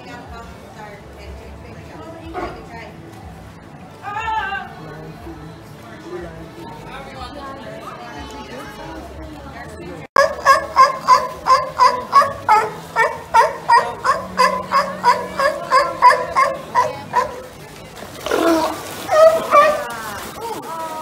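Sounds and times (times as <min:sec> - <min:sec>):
voices: 0:00.0 - 0:21.0
sea lion barking: 0:10.2 - 0:20.4.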